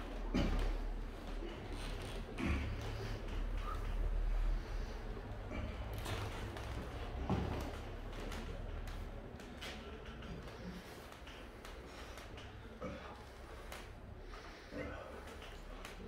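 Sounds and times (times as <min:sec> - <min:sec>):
strained breaths or grunts: 0:00.0 - 0:09.0, 0:09.6 - 0:16.0
table taps and creaks: 0:05.9 - 0:10.5.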